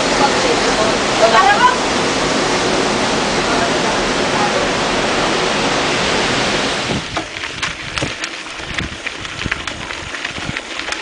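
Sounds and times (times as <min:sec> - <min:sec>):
voices: 0:00.0 - 0:01.9
water rushing: 0:00.0 - 0:11.0.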